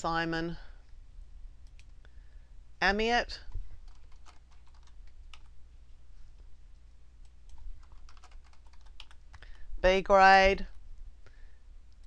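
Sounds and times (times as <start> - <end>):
woman speaking: 0.0 - 0.8, 2.8 - 3.5, 9.8 - 10.8
computer mouse clicks: 1.6 - 2.0.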